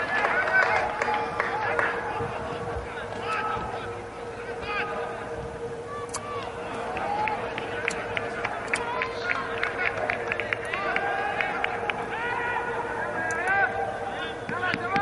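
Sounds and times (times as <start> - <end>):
players shouting: 0.0 - 15.0
steady hum: 0.0 - 15.0.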